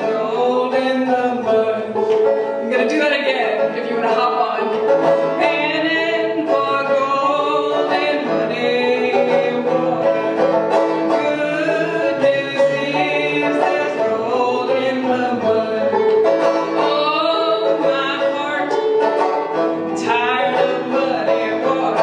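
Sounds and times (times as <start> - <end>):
woman singing: 0.0 - 19.0, 19.8 - 22.0
banjo playing: 0.0 - 22.0.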